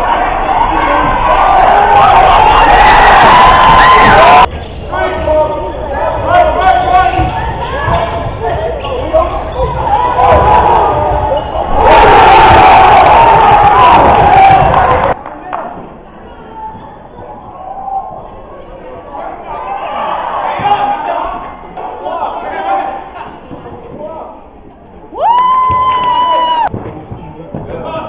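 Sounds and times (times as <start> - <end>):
crowd shouting and cheering: 0.0 - 26.8.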